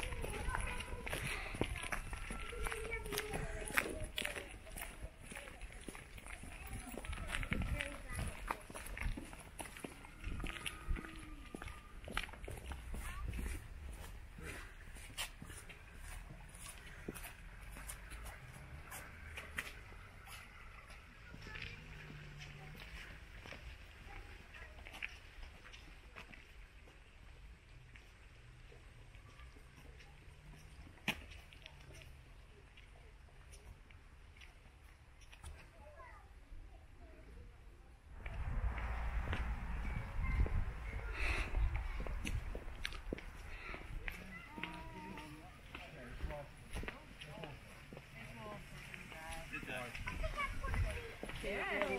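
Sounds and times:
footsteps on stone path: 0.0 - 36.4, 38.1 - 51.9
faint distant voices: 0.0 - 51.9.

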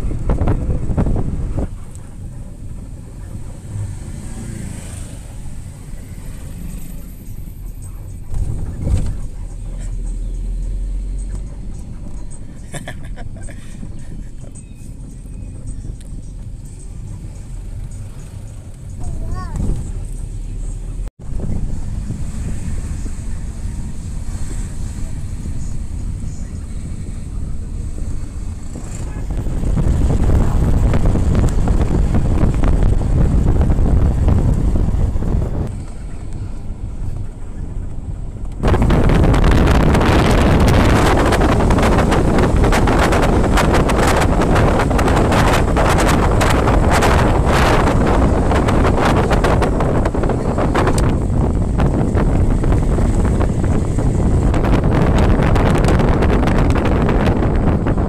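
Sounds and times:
engine and road rumble: 0.0 - 58.0
wind buffeting microphone: 0.0 - 58.0.

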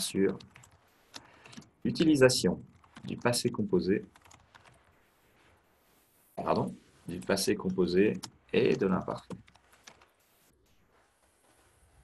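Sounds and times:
computer keyboard typing: 0.0 - 5.0, 7.2 - 10.3.

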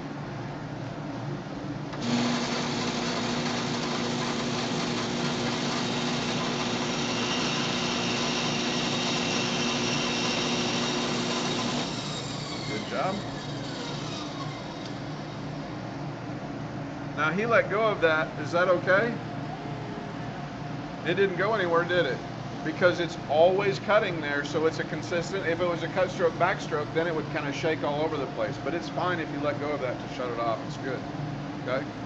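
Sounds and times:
dust collector humming: 1.9 - 16.2, 21.0 - 31.8
band saw running: 2.0 - 15.5.

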